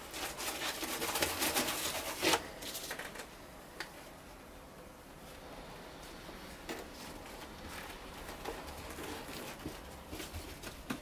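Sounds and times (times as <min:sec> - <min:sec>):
soft scratchy taps and rustles: 0:06.1 - 0:11.0.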